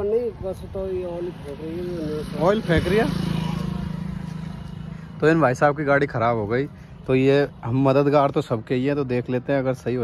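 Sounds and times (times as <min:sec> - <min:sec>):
motorcycle engine running: 0:00.7 - 0:06.9.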